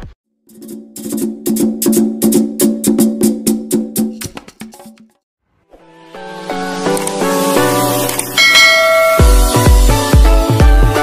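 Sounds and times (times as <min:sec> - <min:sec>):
outro music with repeated notes: 0:00.3 - 0:11.0
bright bell chime: 0:08.4 - 0:09.8.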